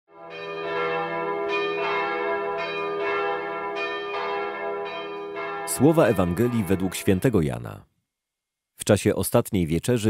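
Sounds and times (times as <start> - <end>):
bells ringing in a peal: 0.2 - 7.4.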